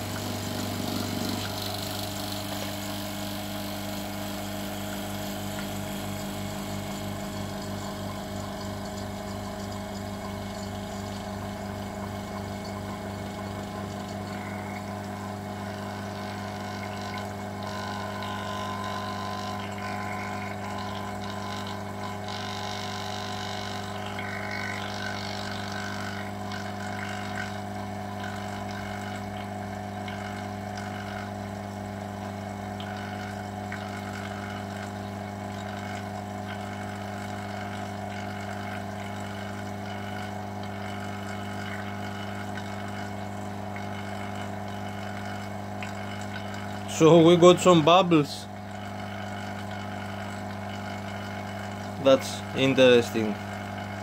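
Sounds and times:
vacuum pump humming: 0.0s - 54.0s.

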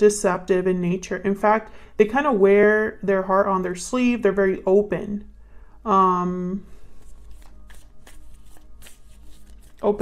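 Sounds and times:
cards being shuffled: 7.0s - 10.0s.

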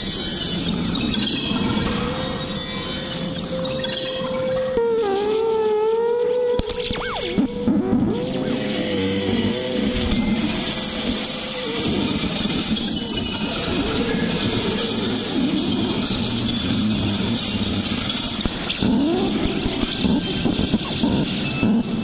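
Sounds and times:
experimental electronic music: 0.0s - 22.0s
swooping pitch glides: 2.1s - 17.8s.

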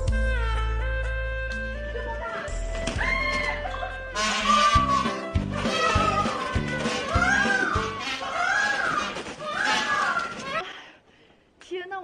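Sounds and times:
background music with beat: 0.0s - 7.9s
peafowl meow-like calls: 3.0s - 10.6s.

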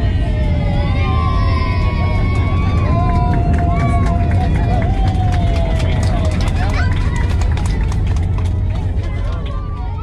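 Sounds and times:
faint voices: 0.0s - 10.0s
jet engines and wheels rumbling: 0.0s - 10.0s.

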